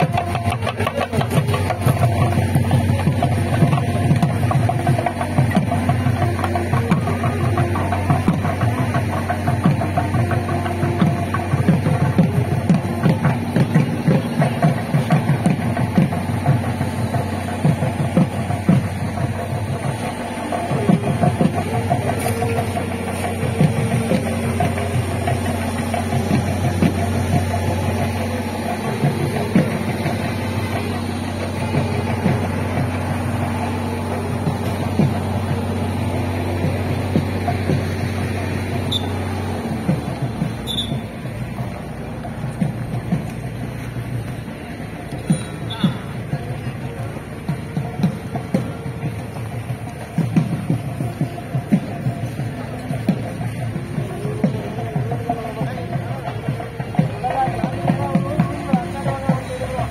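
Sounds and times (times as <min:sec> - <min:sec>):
drums beating rapidly: 0:00.0 - 0:59.9.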